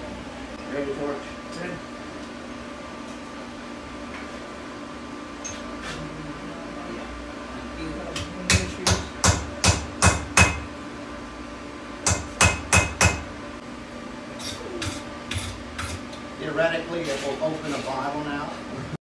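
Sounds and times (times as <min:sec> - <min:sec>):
hammer striking punch on anvil: 0:08.2 - 0:10.7, 0:12.0 - 0:13.3.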